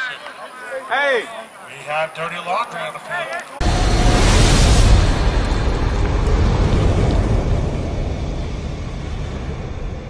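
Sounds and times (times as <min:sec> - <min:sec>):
low explosion rumble: 0:03.6 - 0:10.0.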